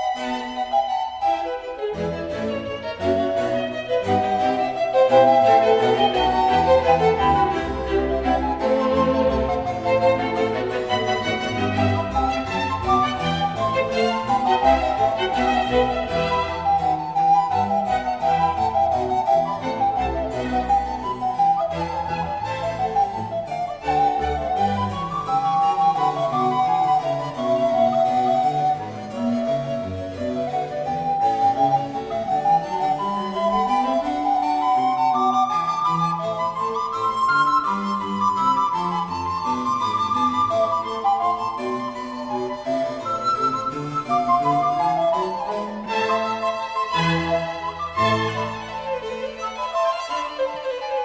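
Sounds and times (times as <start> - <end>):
flute melody: 0.0 - 51.0
strings playing: 0.0 - 51.0
violin: 0.0 - 51.0.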